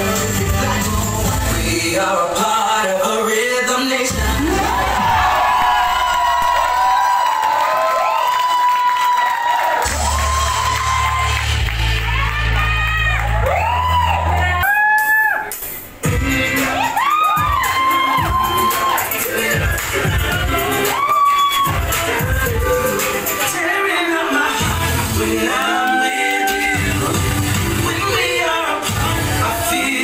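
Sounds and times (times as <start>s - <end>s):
dance music with heavy bass: 0.0s - 2.4s, 4.0s - 6.8s, 16.0s - 30.0s
crowd cheering and whooping: 4.1s - 15.5s, 16.5s - 28.2s.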